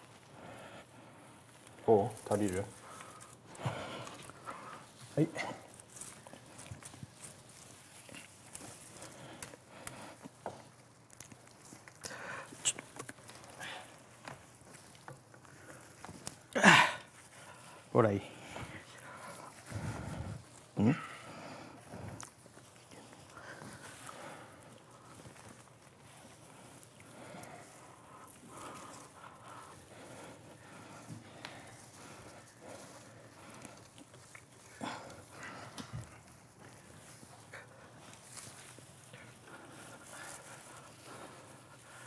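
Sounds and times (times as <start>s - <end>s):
pine branches rustling: 0.0s - 42.0s.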